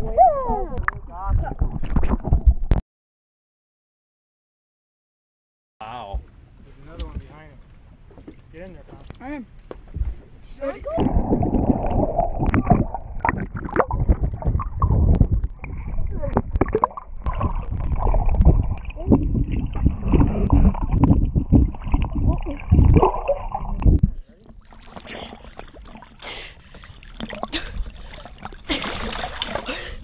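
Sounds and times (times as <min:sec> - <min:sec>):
muffled rushing water: 0:09.9 - 0:30.0
underwater knocks: 0:11.0 - 0:24.2.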